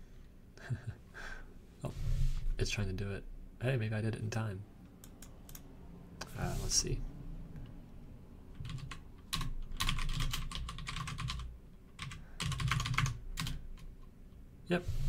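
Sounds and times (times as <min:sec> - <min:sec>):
typing on computer keyboard: 0:08.6 - 0:14.1.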